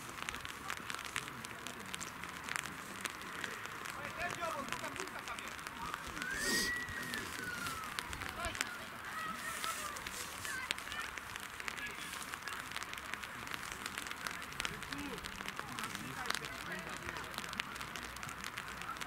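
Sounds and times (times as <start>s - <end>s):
faint distant voices: 0.0s - 19.0s
light crackling: 0.0s - 19.0s.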